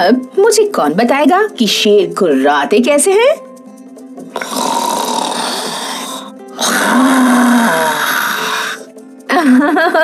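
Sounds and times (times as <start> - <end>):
background music: 0.0 - 10.0
children growling like a tiger: 4.4 - 8.8.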